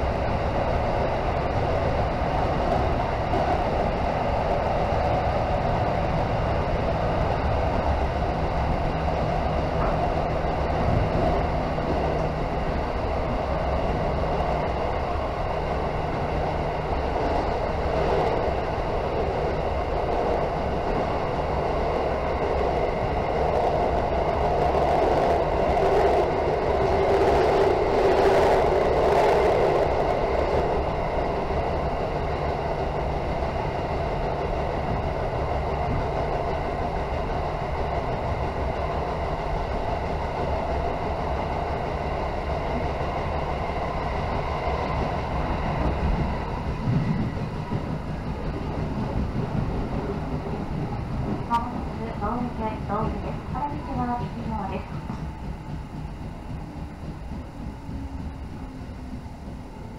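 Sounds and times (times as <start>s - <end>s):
train running in tunnel: 0.0s - 59.9s.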